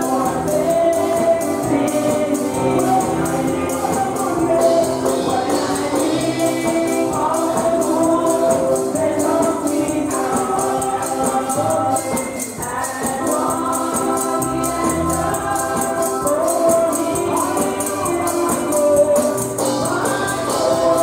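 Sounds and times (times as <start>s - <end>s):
group singing in harmony: 0.0s - 21.0s
tambourine beat: 0.0s - 21.0s.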